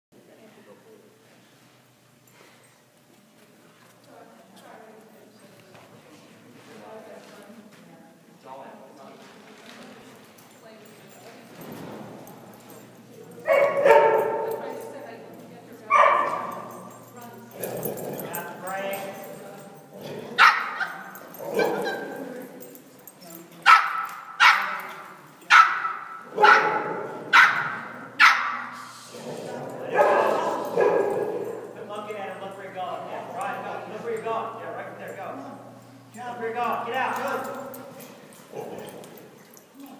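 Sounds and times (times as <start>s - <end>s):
dog barking with echo: 13.5s - 14.7s, 15.9s - 16.7s, 20.4s - 22.2s, 23.7s - 24.9s, 25.5s - 28.8s, 29.9s - 31.7s.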